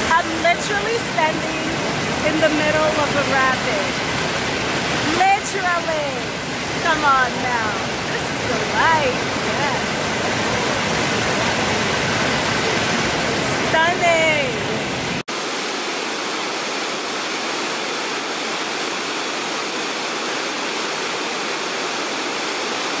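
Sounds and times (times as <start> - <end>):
river rapids rushing: 0.0 - 23.0
waterfall rushing: 0.0 - 23.0.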